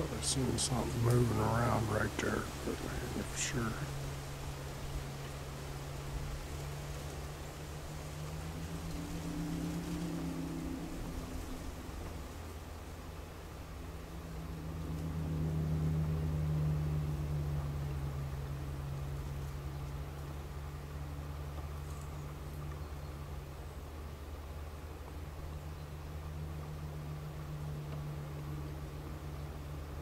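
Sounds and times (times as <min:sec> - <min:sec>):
low mechanical hum: 0:00.0 - 0:30.0
higher wavering tone: 0:08.4 - 0:12.6, 0:13.8 - 0:18.7.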